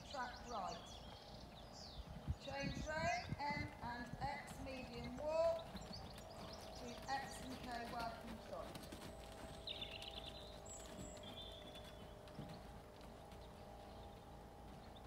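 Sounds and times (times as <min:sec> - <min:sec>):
hoofbeats on loose surface: 0:04.5 - 0:15.0.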